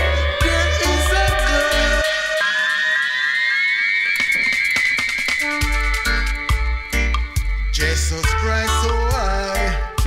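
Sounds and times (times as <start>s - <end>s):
gliding electronic tone with echo: 0.0s - 8.2s.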